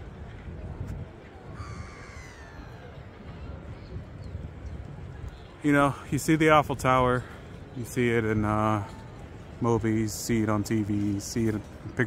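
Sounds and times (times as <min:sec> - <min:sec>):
drawn-out high call: 0:01.6 - 0:03.2.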